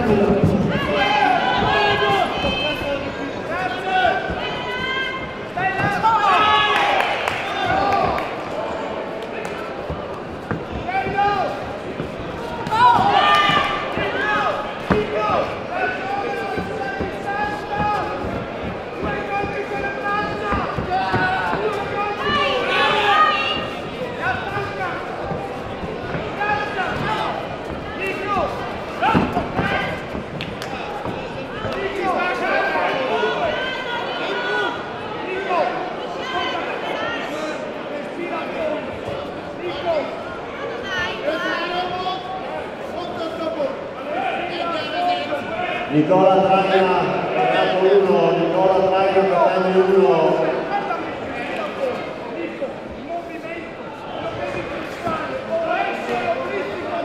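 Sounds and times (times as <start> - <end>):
voices shouting in a hall: 0.0 - 57.0.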